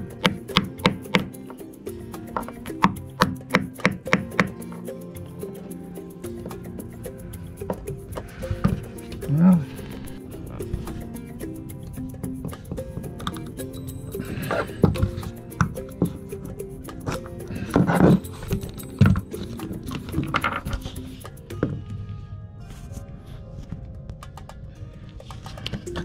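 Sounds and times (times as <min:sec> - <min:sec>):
background music: 0:00.0 - 0:26.0.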